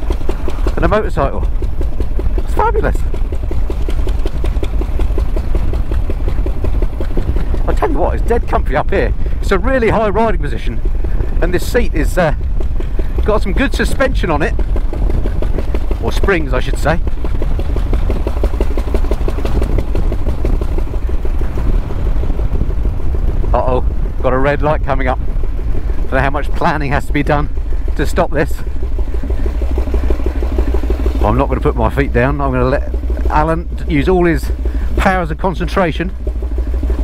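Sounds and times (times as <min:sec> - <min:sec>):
motorcycle engine thumping at low revs: 0:00.0 - 0:37.0.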